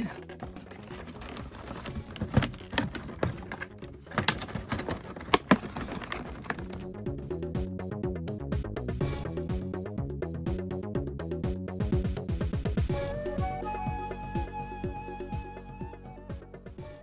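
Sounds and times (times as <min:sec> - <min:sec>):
packaging clicking and crackling: 0:00.0 - 0:07.0
background music: 0:00.0 - 0:17.0.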